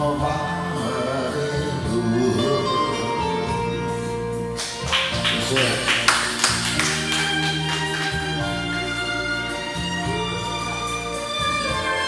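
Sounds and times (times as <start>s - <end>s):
man singing into a microphone: 0.0s - 3.9s
karaoke backing track: 0.0s - 12.0s.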